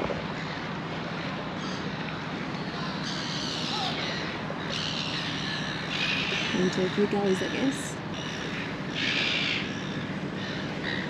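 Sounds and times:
constant noise wash: 0.0s - 11.0s
steady engine hum: 0.0s - 11.0s.

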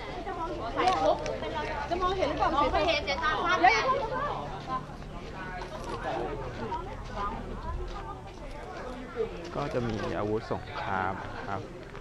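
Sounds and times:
chatter of several voices: 0.0s - 12.0s.

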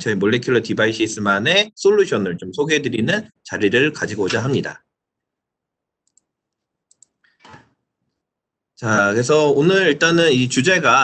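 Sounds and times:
computer mouse clicks: 6.0s - 7.8s.

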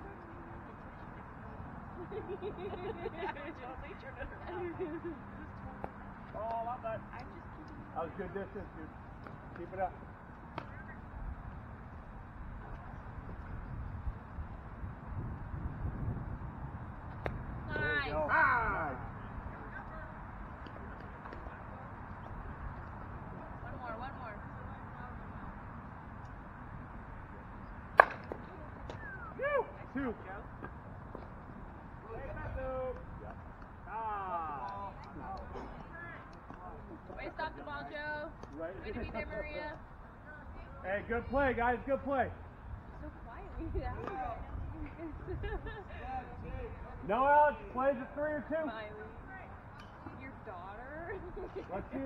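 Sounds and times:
distant voices: 0.0s - 52.0s.

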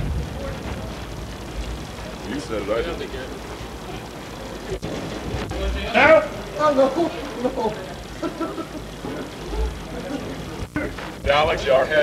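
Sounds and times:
faint voices: 0.0s - 12.0s
low steady rumble: 0.0s - 12.0s.

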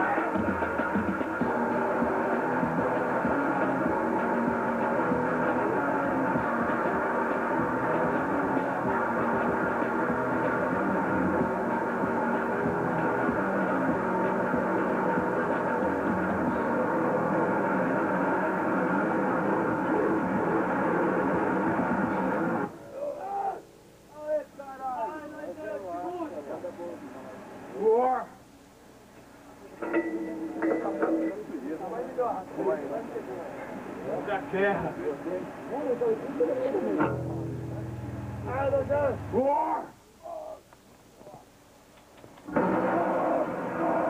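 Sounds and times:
noisecore band playing live: 37.0s - 39.4s.

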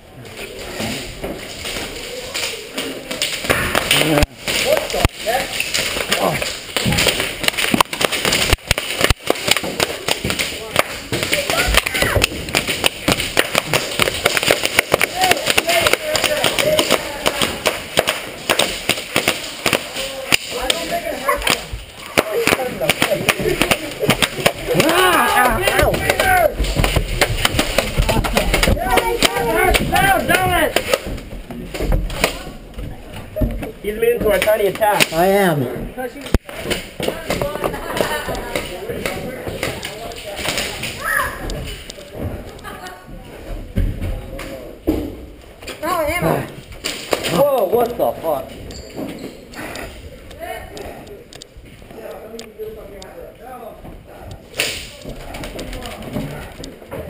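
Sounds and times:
airsoft guns firing: 5.7s - 31.1s
voices shouting: 24.6s - 26.7s, 28.8s - 30.8s.

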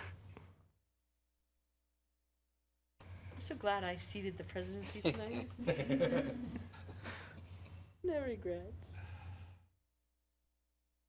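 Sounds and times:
breathy exhale: 8.9s - 9.8s.

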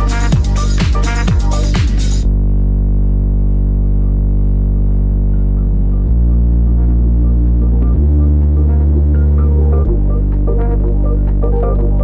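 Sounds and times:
low bass synth drone: 0.0s - 12.0s.

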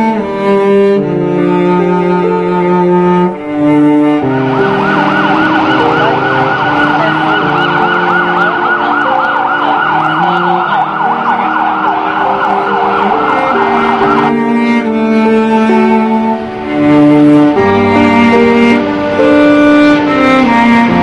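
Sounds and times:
bowed-string music: 0.0s - 21.0s
siren-like warbling tone: 4.2s - 14.4s.

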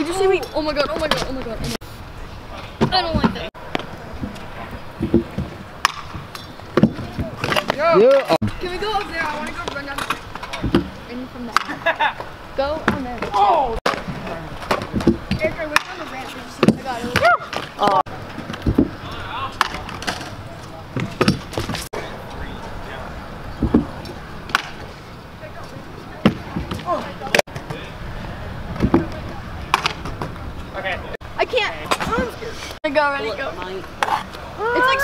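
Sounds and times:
scooter wheels rolling on concrete: 0.0s - 35.0s.

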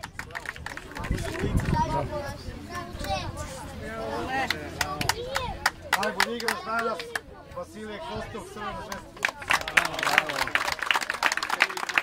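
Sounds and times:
group applause: 0.0s - 1.7s, 8.9s - 12.0s.

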